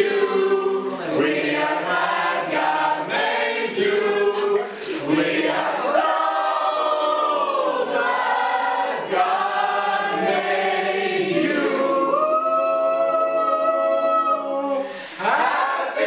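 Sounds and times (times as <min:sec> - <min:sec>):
group singing together: 0:00.0 - 0:16.0.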